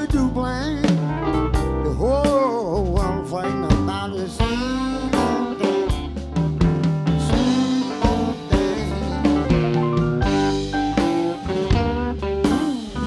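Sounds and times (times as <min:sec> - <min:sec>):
electric guitar bending notes: 0:00.0 - 0:13.0
live blues band: 0:00.0 - 0:13.0.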